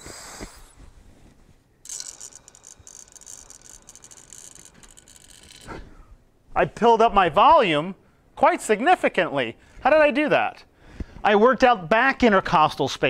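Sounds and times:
slow airy inhalation hiss: 0.0s - 1.2s.

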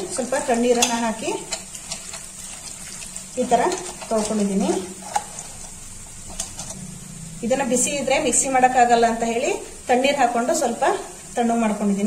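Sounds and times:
wet leaves squelching and crackling: 0.0s - 6.9s
person speaking: 3.4s - 5.0s.

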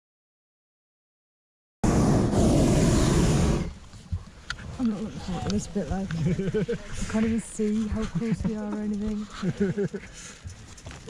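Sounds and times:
propane burner roaring: 1.8s - 3.7s.

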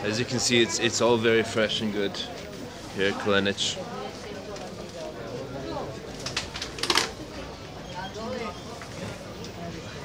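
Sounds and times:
market voices: 0.0s - 10.0s.

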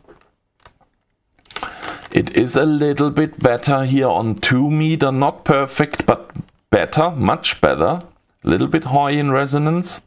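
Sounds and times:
man speaking: 2.1s - 10.0s.

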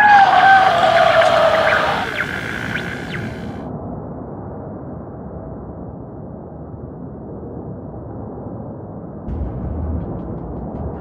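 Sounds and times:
long falling creature moan: 0.0s - 3.0s
brief rising chirps: 0.0s - 3.6s.

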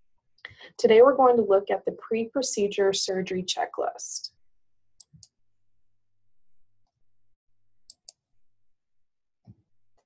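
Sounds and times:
computer mouse clicking: 7.9s - 8.2s.

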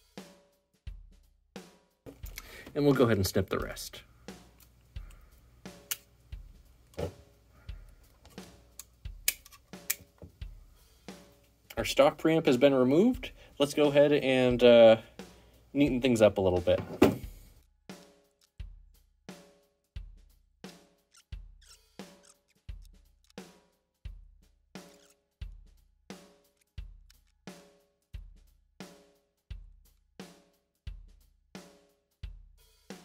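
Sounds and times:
drum kit beat: 0.0s - 18.0s, 18.6s - 21.6s, 22.7s - 33.0s.

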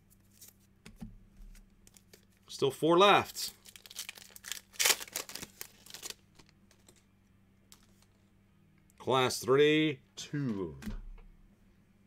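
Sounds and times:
cards being handled: 0.0s - 2.5s, 3.6s - 7.1s
foil wrapper crinkling: 3.4s - 7.0s.

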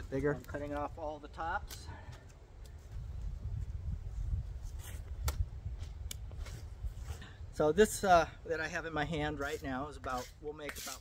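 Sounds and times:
low wind rumble: 0.0s - 9.0s.

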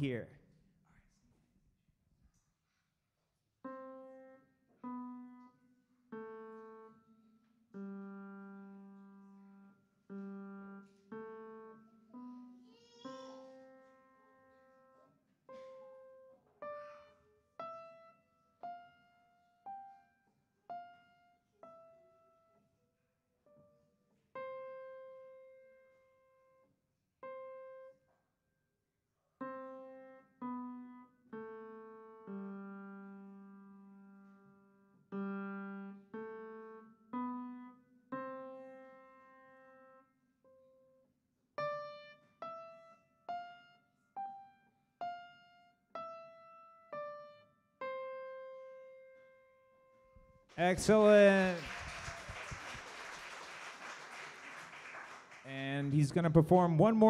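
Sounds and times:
slow simple piano melody: 3.6s - 22.8s, 23.4s - 28.6s, 29.4s - 50.5s.

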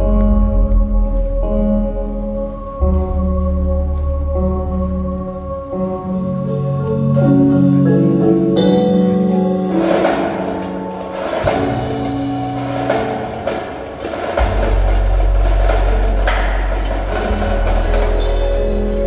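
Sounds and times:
marimbas and mallet keyboards: 0.0s - 19.0s
drums and cymbals: 6.1s - 19.0s
high bell-like notes: 17.0s - 19.0s.

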